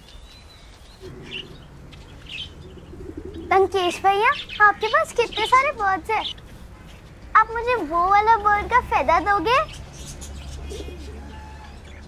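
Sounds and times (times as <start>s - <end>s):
light bird chirps: 0.0s - 12.0s
doves cooing softly: 1.0s - 6.0s, 10.0s - 12.0s
steady low hum: 1.0s - 11.3s.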